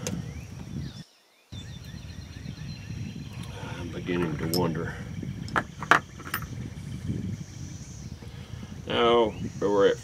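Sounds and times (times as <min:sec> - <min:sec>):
steady low rumble: 0:01.6 - 0:09.6.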